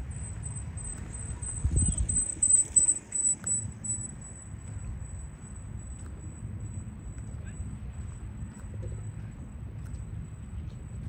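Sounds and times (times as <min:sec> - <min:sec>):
wind buffeting microphone: 0:00.0 - 0:03.2
steady high-pitched tone: 0:00.0 - 0:08.2.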